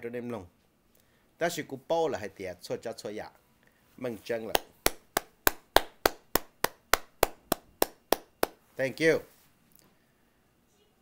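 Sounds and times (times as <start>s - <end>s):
person clapping hands: 4.5s - 8.6s.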